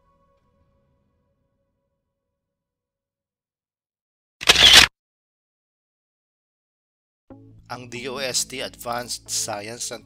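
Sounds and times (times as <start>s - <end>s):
camera shutter click: 4.4s - 4.9s.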